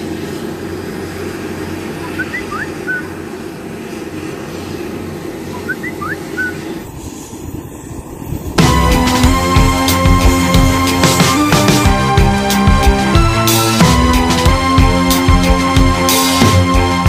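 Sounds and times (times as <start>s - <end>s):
low outdoor rumble: 0.0s - 17.0s
bird chirping: 2.0s - 3.2s, 5.5s - 6.9s.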